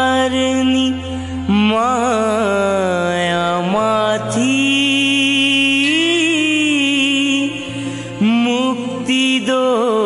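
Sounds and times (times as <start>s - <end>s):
devotional singing: 0.0s - 10.0s
steady low drone: 0.0s - 10.0s.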